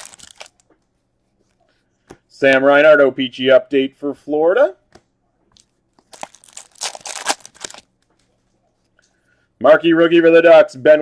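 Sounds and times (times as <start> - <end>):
foil wrapper tearing and crinkling: 0.0 - 0.6, 6.1 - 7.9.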